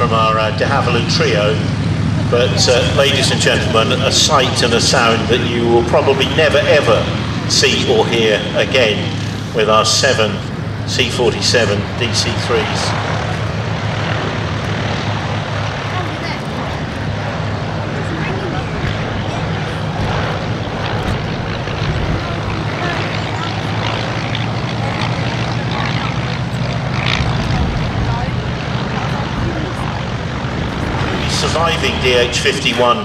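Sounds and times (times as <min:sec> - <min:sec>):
propeller aircraft engines droning: 0:00.0 - 0:33.0.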